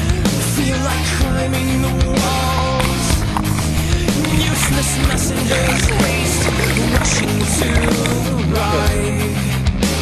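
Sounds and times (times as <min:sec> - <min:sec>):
person singing: 0:00.0 - 0:09.4
rock music: 0:00.0 - 0:10.0.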